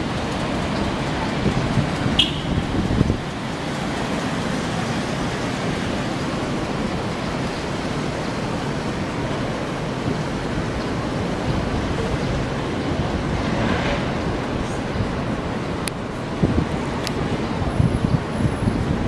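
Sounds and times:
city street traffic: 0.0 - 19.0.

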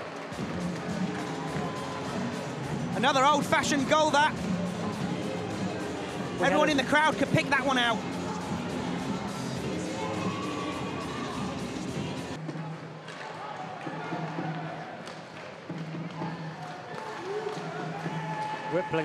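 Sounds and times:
crowd murmur: 0.0 - 14.9
faint music: 0.0 - 15.0.

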